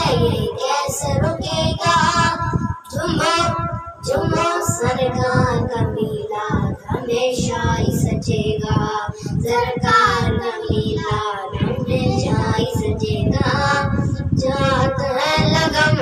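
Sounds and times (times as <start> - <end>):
boys singing into a microphone: 0.0 - 16.0.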